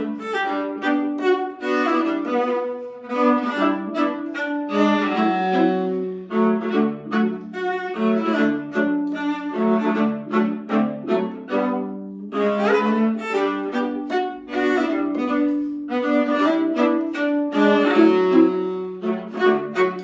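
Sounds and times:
viola and string instrument duet: 0.0s - 20.0s.

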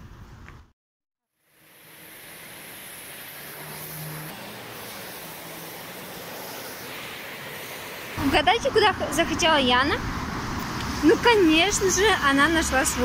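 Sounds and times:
distant road traffic: 1.3s - 13.0s
passing vehicle engine hum: 1.6s - 13.0s.

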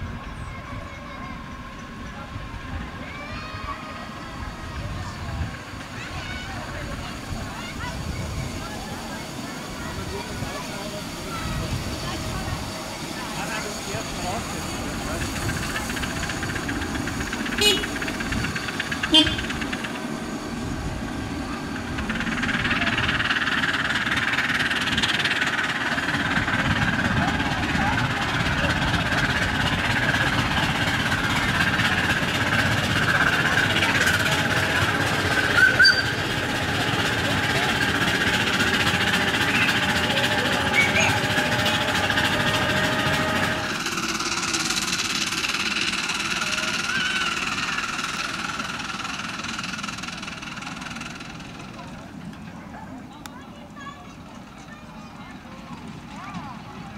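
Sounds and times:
crowd chatter: 0.0s - 56.9s
miniature train mechanical rumble: 0.0s - 56.9s.

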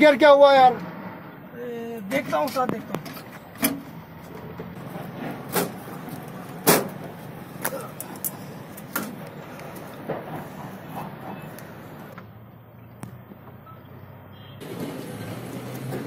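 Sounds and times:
footsteps on stony ground: 4.2s - 12.0s
truck cab door clunks: 6.6s - 7.1s.

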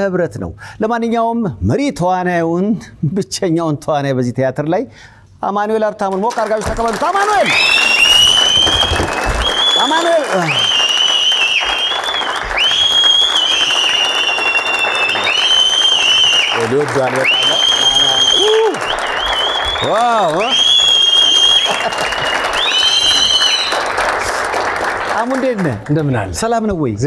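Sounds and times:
audience applauding: 6.1s - 26.6s
shrill high-pitched cheers: 7.2s - 24.0s.

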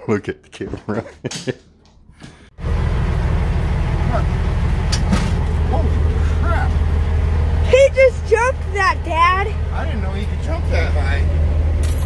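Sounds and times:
person laughing: 0.7s - 1.6s
diesel truck engine idling: 2.4s - 12.0s.

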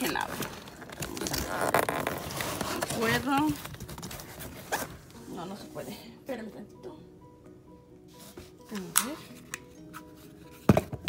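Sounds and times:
packing tape ripping off cardboard: 0.2s - 5.0s.

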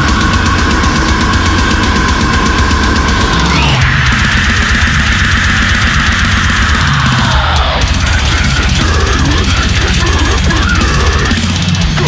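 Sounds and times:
distorted guitars: 0.0s - 12.0s
fast dense drumming: 0.0s - 12.0s.

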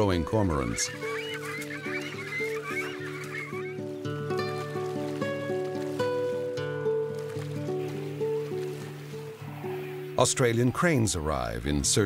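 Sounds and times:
young birds squeaky calls: 0.0s - 5.2s
background music: 0.0s - 12.0s.

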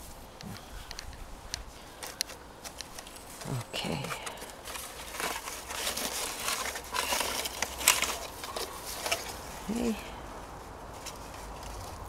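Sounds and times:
grass and leaves rustling: 0.0s - 12.0s.

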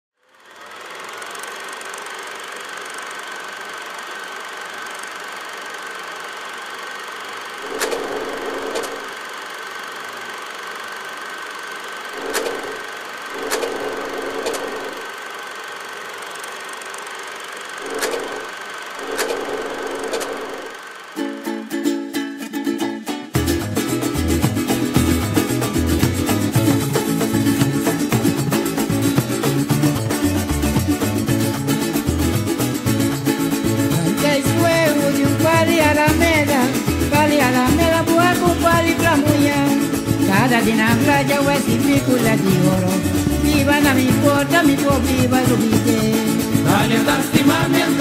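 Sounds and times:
film projector whirring: 0.2s - 21.6s, 23.9s - 48.0s
projector click: 7.6s - 9.2s, 12.2s - 15.1s, 17.8s - 20.8s.

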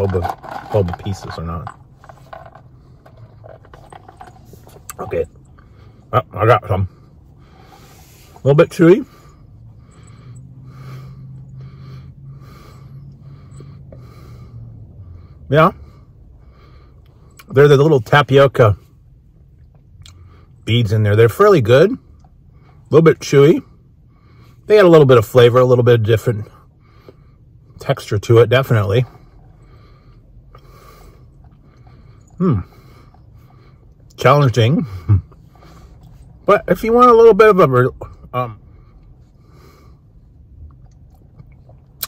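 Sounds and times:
low steady hum: 0.0s - 42.0s
nasal breathing: 6.9s - 8.4s, 9.0s - 17.4s, 29.2s - 34.1s
chewing mouth sounds: 40.6s - 42.0s.

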